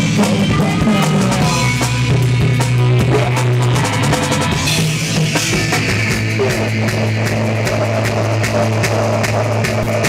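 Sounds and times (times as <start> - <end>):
drum and cymbal hits: 0.0 - 10.0
rock band playing: 0.0 - 10.0.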